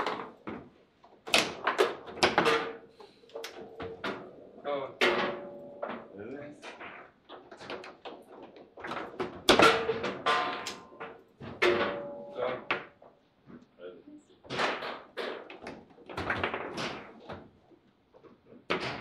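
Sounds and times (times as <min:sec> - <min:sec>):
foosball clacks and thuds: 0:00.0 - 0:04.3, 0:05.0 - 0:13.2, 0:14.5 - 0:19.0.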